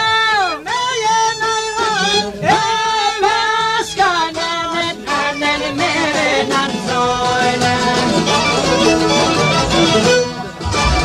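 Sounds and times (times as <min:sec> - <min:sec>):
high sliding melody: 0:07.5 - 0:11.0.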